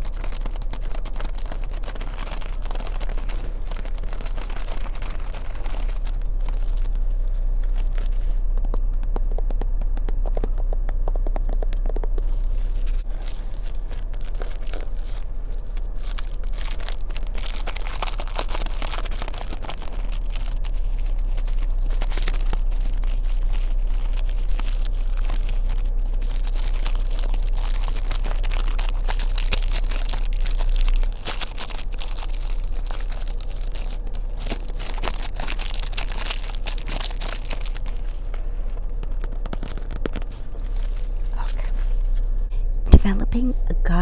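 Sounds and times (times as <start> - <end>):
thin pages leafed and crinkling: 0.0 - 42.5.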